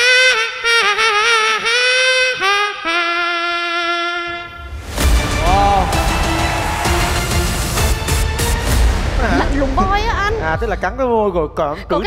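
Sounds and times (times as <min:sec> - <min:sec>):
beatboxer imitating saxophone: 0:00.0 - 0:04.6.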